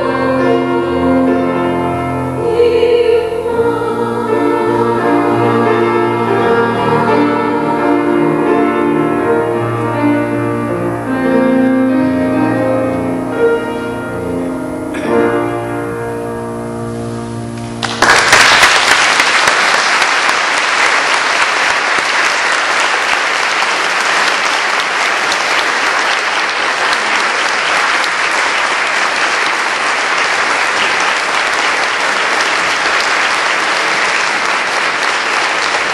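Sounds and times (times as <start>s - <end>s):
grand piano chord: 0.0s - 18.0s
audience applause: 17.8s - 35.9s.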